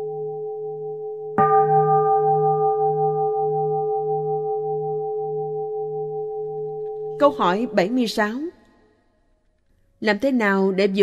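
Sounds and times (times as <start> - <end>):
singing bowl ringing: 0.0 - 8.3.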